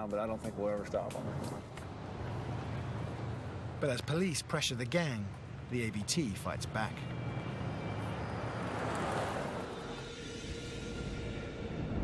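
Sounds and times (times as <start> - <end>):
car driving on paved road: 0.3 - 10.6.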